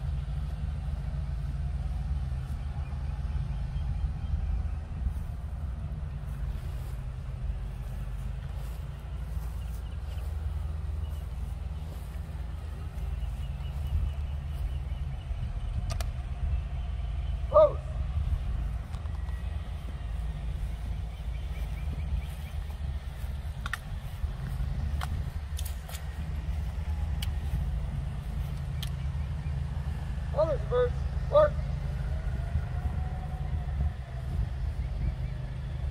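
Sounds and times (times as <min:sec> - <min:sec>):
low outdoor rumble: 0:00.0 - 0:35.9
faint sharp clicks: 0:15.8 - 0:16.2, 0:23.6 - 0:23.9, 0:27.1 - 0:27.4, 0:28.5 - 0:29.1.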